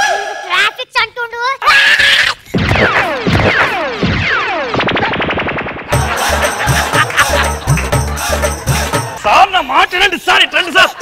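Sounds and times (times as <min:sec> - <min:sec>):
music with bass beat: 0:05.9 - 0:09.2.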